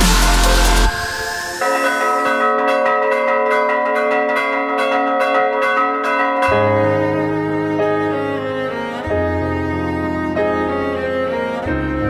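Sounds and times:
rising sweep: 0:00.0 - 0:02.3
bells ringing: 0:00.0 - 0:07.6
low bowed strings: 0:06.5 - 0:12.0.

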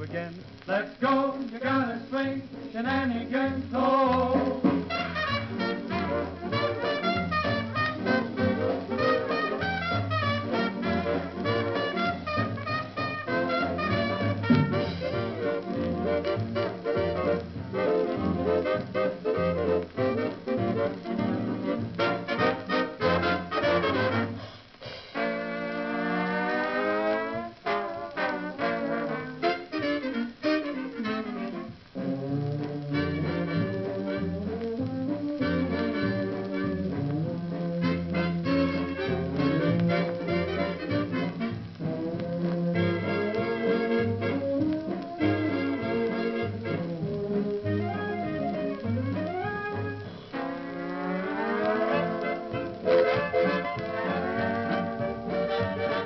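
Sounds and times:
swing band brass music: 0:00.0 - 0:56.0
trombone slides: 0:00.0 - 0:56.0.

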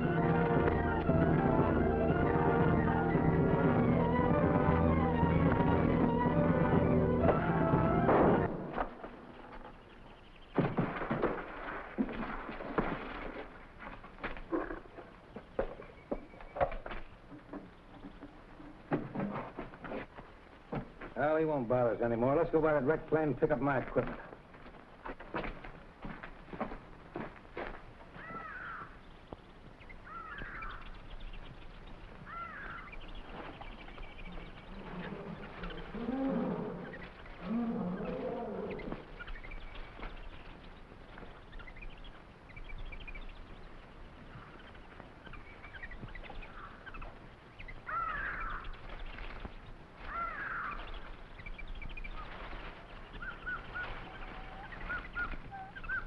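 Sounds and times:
deep animal cries: 0:34.7 - 0:39.1.

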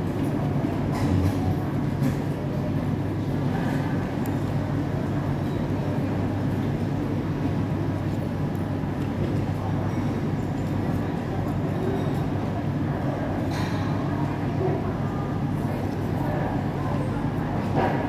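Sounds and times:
hum of busy food court: 0:00.0 - 0:18.0.

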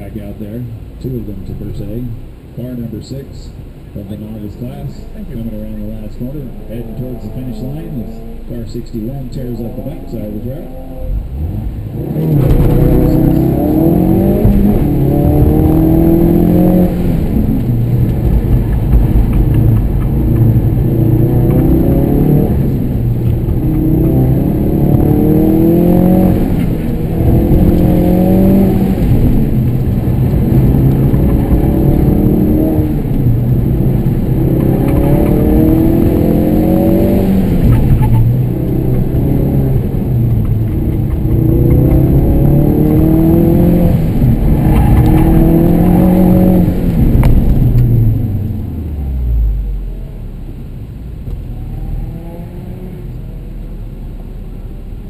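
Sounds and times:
car engine revving hard: 0:05.2 - 0:50.2.

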